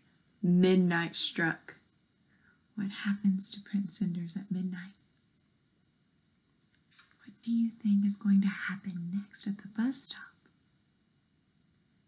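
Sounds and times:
woman speaking: 0:00.4 - 0:01.8, 0:02.8 - 0:04.9, 0:07.2 - 0:10.4.

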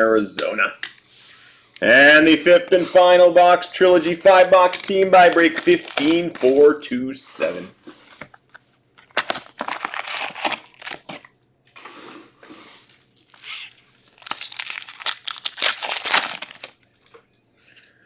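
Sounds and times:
card pack wrapper tearing: 0:04.3 - 0:06.6, 0:09.0 - 0:11.3, 0:13.3 - 0:16.8
wrapper crinkling: 0:04.3 - 0:06.7, 0:09.0 - 0:11.3, 0:13.2 - 0:17.1.

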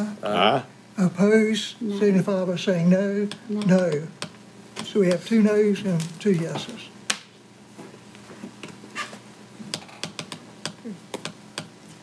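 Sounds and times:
laptop keyboard typing: 0:09.7 - 0:11.7.

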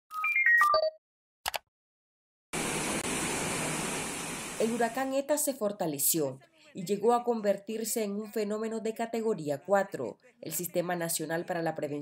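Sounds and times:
wind and surf rushing: 0:02.6 - 0:05.0.

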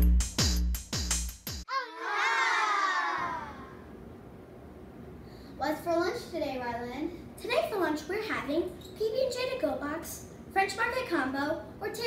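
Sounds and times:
children cheering: 0:01.7 - 0:03.9.

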